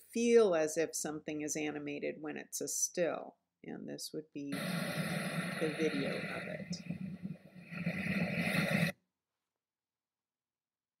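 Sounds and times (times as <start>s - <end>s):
ocean surf: 4.5s - 8.9s.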